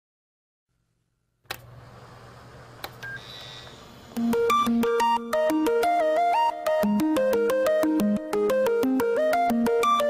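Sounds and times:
speaker electrical hum: 1.3s - 5.4s
click: 1.5s - 1.7s.

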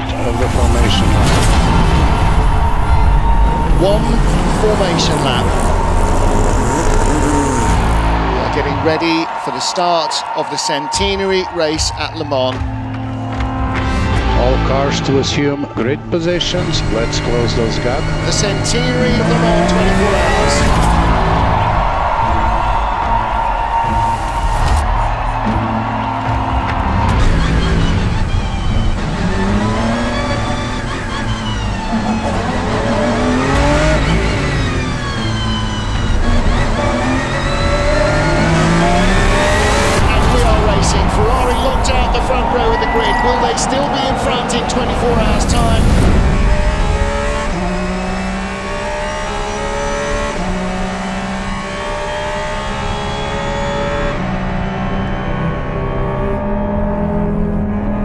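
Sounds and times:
race cars passing at speed: 0.0s - 58.0s.

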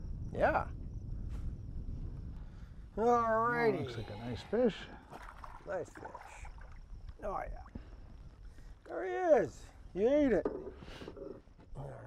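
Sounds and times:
wind buffeting microphone: 0.0s - 11.4s.

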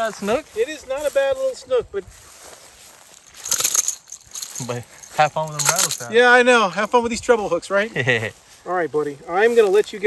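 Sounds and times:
footsteps rustling dry grass: 0.0s - 10.0s.

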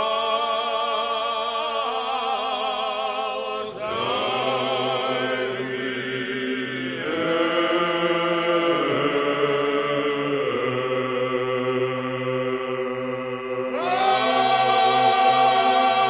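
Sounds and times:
choir chanting: 0.0s - 16.0s.

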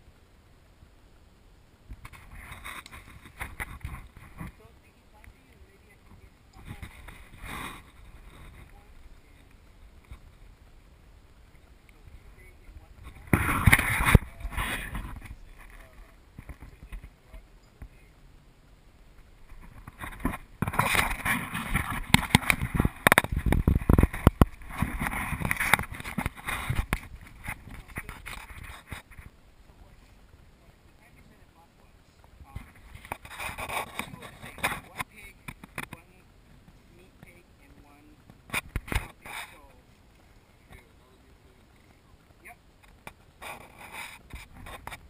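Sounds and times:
camera handling noise: 19.5s - 29.3s.

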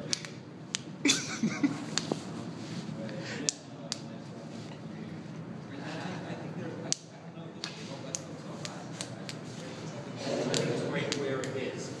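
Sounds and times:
steady background noise: 0.0s - 12.0s
man laughing: 1.0s - 1.9s.

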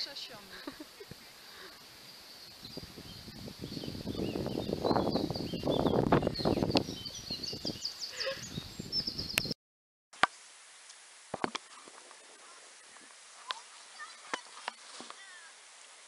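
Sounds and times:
birds chirping: 0.0s - 9.6s, 11.6s - 15.5s
wind buffeting microphone: 2.5s - 9.6s.

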